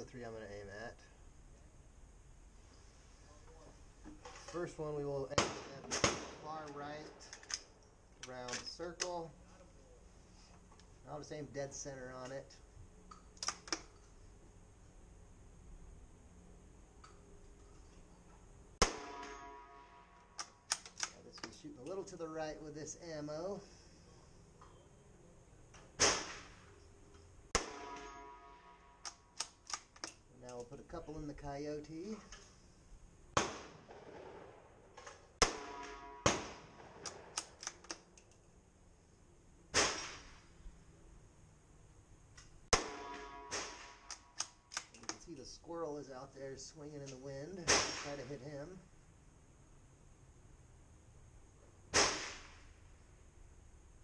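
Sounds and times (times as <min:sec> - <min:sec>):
rifle shot: 0:05.3 - 0:07.5, 0:18.8 - 0:21.2, 0:26.0 - 0:26.7, 0:27.5 - 0:29.9, 0:33.3 - 0:37.8, 0:39.7 - 0:40.5, 0:42.7 - 0:44.9, 0:47.6 - 0:48.4, 0:51.9 - 0:52.8
light clicks: 0:44.1 - 0:45.2.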